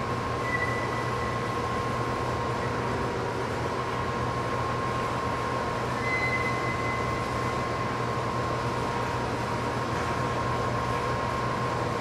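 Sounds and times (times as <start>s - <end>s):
mechanical hum: 0.0s - 12.0s
high whistling tone: 0.4s - 1.4s, 6.0s - 7.3s.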